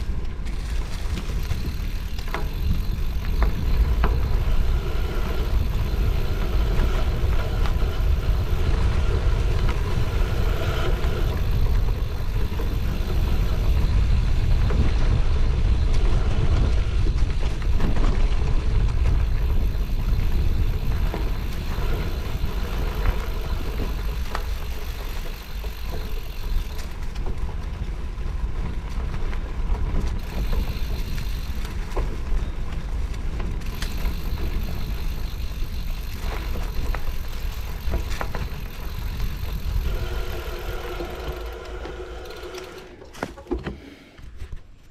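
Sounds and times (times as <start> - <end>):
bike clicks and rattles: 0.0 - 44.9
wind and tyres rumbling on dirt: 0.0 - 44.9
steady whine: 33.8 - 43.4.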